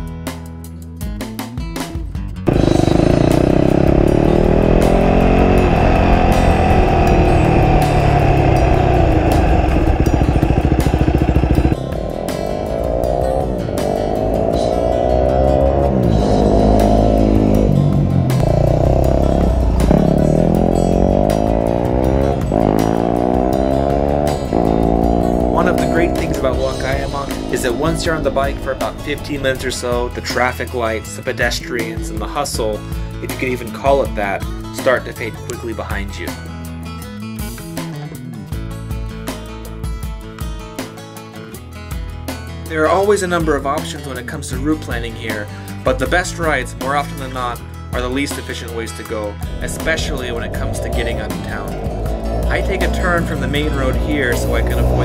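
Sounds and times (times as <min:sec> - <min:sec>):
motorcycle engine revving: 0:02.4 - 0:31.0, 0:37.4 - 0:39.4, 0:48.4 - 0:55.0.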